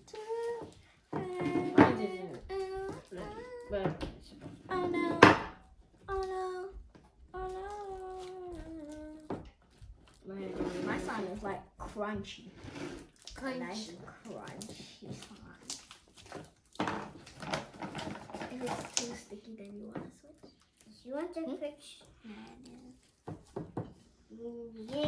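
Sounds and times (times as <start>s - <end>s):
children talking and babbling: 0.0s - 9.5s, 24.2s - 25.0s.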